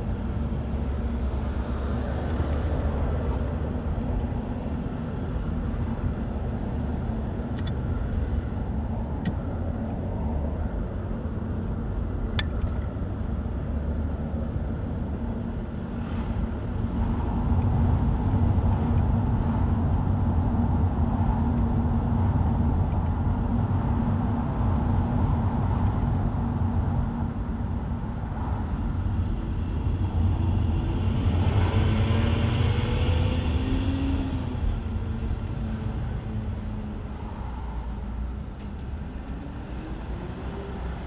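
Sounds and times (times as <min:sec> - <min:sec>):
car engine and tyre noise: 0:00.0 - 0:41.0.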